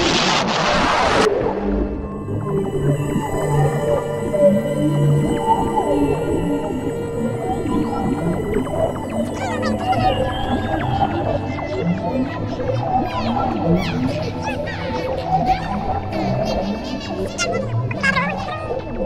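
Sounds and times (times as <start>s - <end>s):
low drone: 0.0s - 17.3s
whale-like gliding calls: 0.0s - 19.0s
held steady tones: 2.0s - 16.0s.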